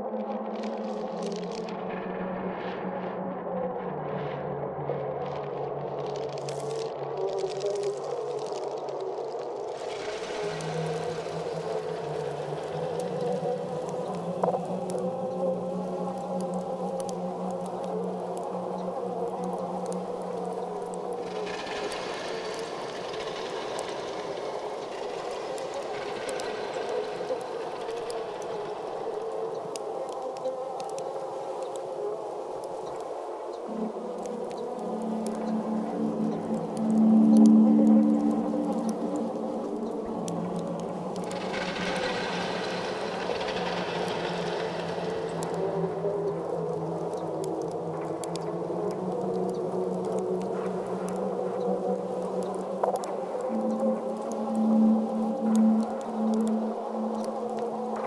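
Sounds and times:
ambient drone of sustained tones: 0.0 - 58.0
bright hissing upper layer: 7.4 - 58.0.

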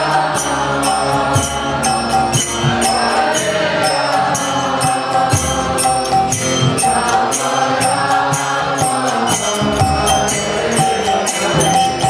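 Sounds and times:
harmonium: 0.0 - 12.0
metallic percussion beat: 0.0 - 12.0.

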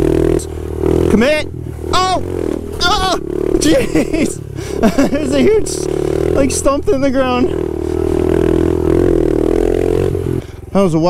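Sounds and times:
small motorbike engine running: 0.0 - 10.7.

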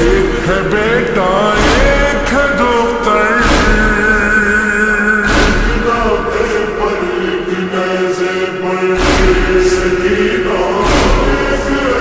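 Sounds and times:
heavy beat: 0.0 - 8.2, 8.8 - 12.0
voices chanting held lines: 0.0 - 12.0.

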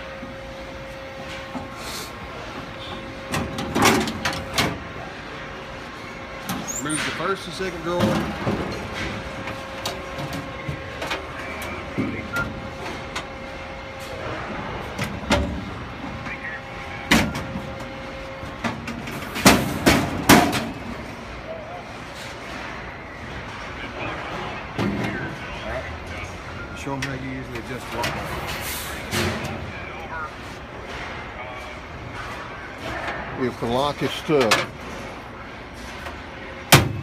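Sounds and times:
steady hum: 0.0 - 37.0.

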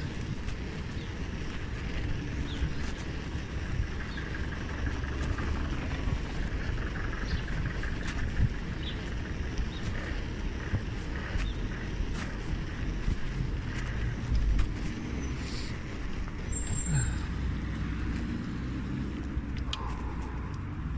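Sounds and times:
road and tyre noise: 0.0 - 20.9
wind rumbling on microphone: 0.0 - 20.9
sharp clicks: 19.1 - 20.7.

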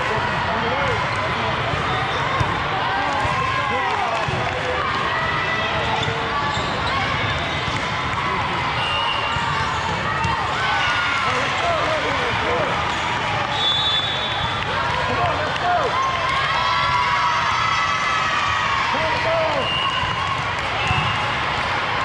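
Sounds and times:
volleyballs bouncing and struck: 1.0 - 5.4, 20.2 - 21.7.

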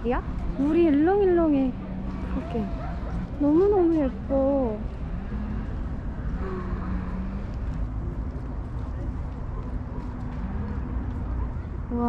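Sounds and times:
faint murmured voices: 0.4 - 12.0.

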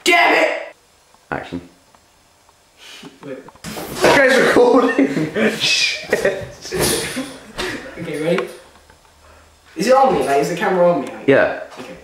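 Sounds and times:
young man talking: 0.0 - 0.7, 1.3 - 1.7, 3.2 - 8.6, 9.8 - 12.0.

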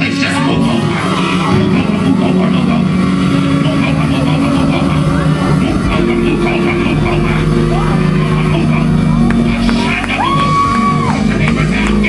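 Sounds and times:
person singing: 0.2 - 12.0.

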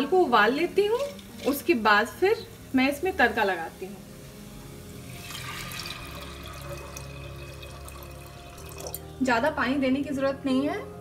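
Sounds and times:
water pouring and splashing: 0.7 - 2.4, 5.0 - 9.2.

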